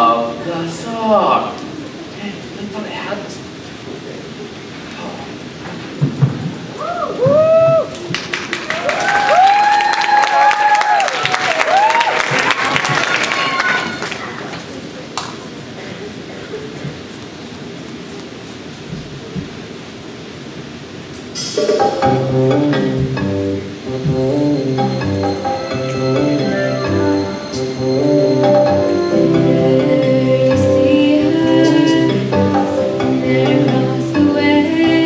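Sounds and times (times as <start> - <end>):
low murmur of crowd: 0.0 - 35.0
audience cheering with whoops: 6.8 - 14.0
audience clapping: 7.8 - 15.4
backing music: 21.4 - 35.0.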